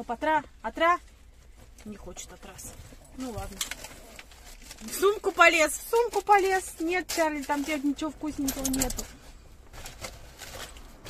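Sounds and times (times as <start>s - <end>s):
shopping bag rustling: 0.3s - 11.0s.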